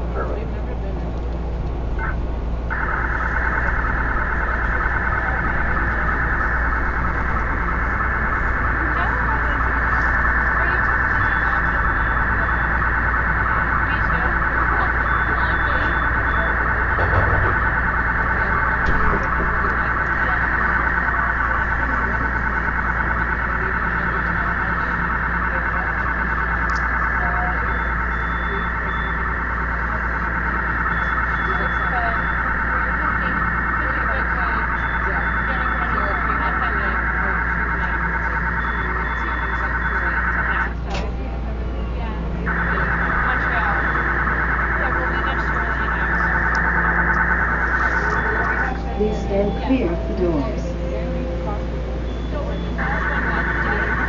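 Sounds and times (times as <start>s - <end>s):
dense electronic buzz: 0.0s - 54.0s
low hum: 0.0s - 54.0s.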